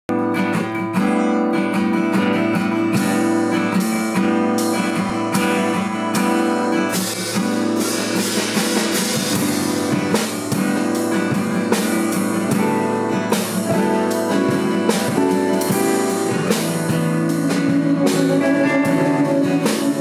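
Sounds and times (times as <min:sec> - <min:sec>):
acoustic guitar strumming: 0:00.1 - 0:20.0.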